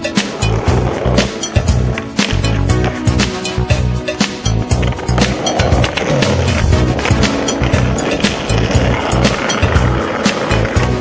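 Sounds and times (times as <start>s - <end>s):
skateboard wheels on brick paving: 0.0s - 3.9s, 4.5s - 11.0s
music with steady beat: 0.0s - 11.0s.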